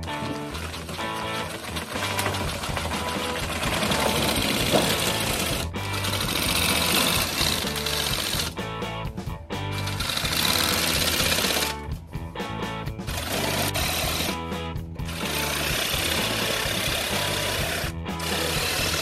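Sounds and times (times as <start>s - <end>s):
background music: 0.0s - 19.0s
metal shear cutting sheet metal: 0.2s - 8.5s, 15.2s - 19.0s.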